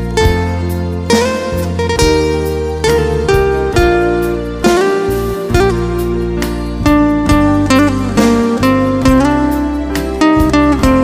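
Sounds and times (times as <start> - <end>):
acoustic guitar melody: 0.0 - 11.0.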